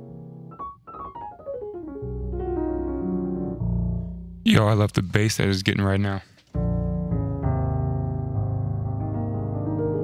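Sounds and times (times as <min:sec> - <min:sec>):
muted piano soft chords: 0:00.0 - 0:05.3, 0:06.6 - 0:10.0.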